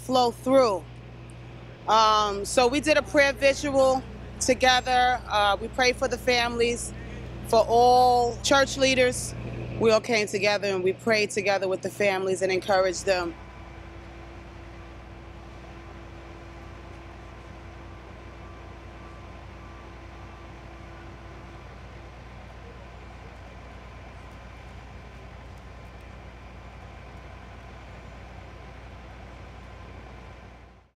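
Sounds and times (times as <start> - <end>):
vehicle engines humming: 0.0 - 30.9
faint steady tone: 13.3 - 30.9.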